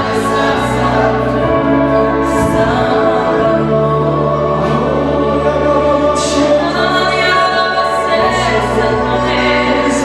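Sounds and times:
electric keyboard: 0.0s - 10.0s
singers singing together: 0.0s - 10.0s.

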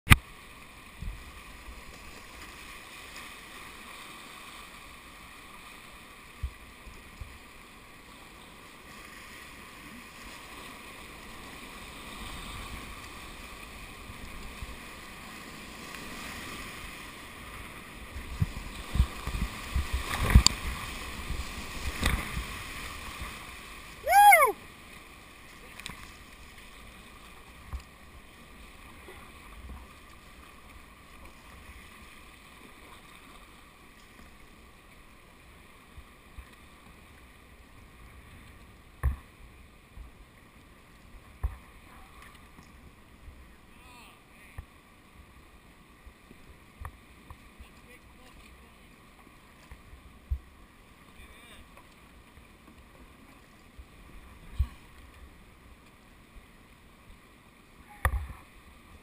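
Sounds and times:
paddle strokes splashing: 0.1s - 45.2s
rushing whitewater river: 0.3s - 42.2s
person whooping: 24.0s - 24.6s.

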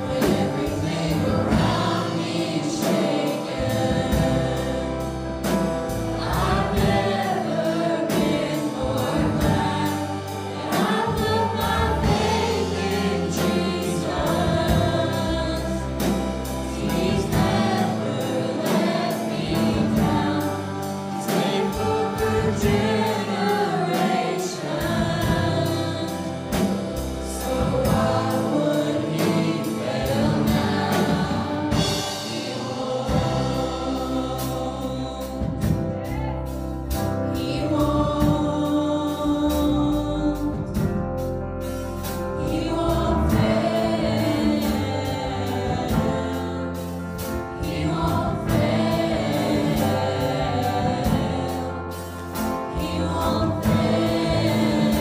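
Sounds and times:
band accompaniment with steady beat: 0.0s - 55.0s
youth choir singing gospel song: 0.0s - 55.0s.

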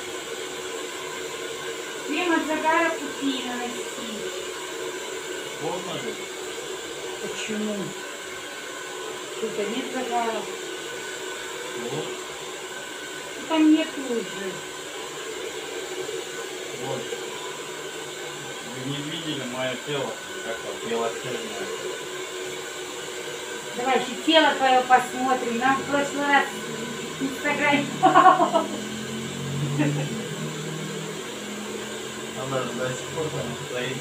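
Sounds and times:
hair dryer blowing: 0.0s - 34.0s.

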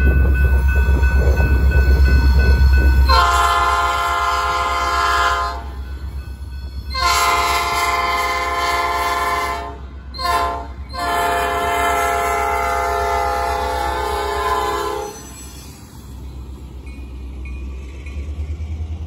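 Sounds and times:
low rumble of locomotives: 0.0s - 19.0s
locomotive air horn blasts: 3.1s - 5.8s, 6.9s - 15.2s.

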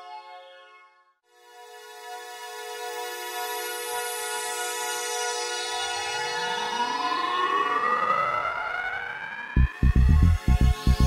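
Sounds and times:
rising synthesizer sweep: 6.7s - 11.0s
held synthesizer chords: 9.6s - 11.0s.

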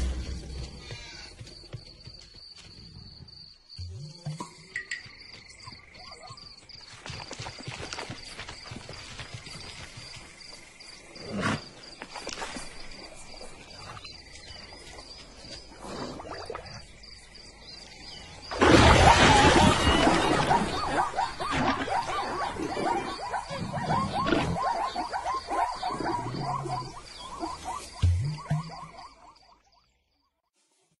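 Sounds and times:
insects chirping in pulses: 0.0s - 30.0s
frog-like croaking calls: 18.8s - 29.5s.

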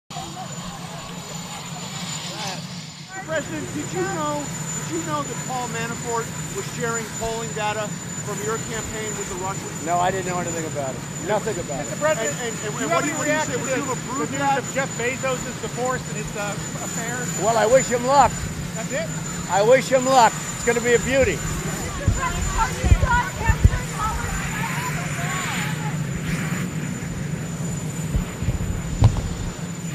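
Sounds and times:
faint voices: 0.1s - 27.3s
indistinct chatter: 0.1s - 29.9s
low mechanical hum: 0.1s - 29.9s
steady low drone: 0.1s - 29.9s.

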